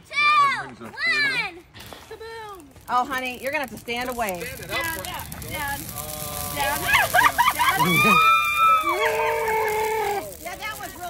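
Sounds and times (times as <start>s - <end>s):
laughter: 7.0s - 8.2s
person shrieking: 7.8s - 10.2s.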